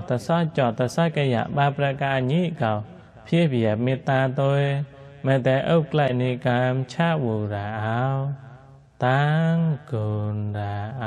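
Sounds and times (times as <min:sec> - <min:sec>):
man chanting in low voice: 0:00.0 - 0:11.0.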